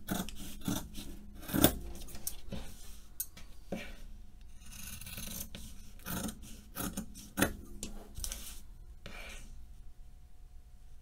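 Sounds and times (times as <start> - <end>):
scissors cutting fabric: 0.0 - 2.3, 4.5 - 7.6.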